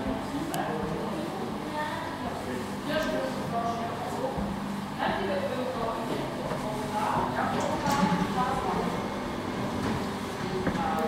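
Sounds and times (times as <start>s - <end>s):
indistinct chatter: 0.0s - 11.0s.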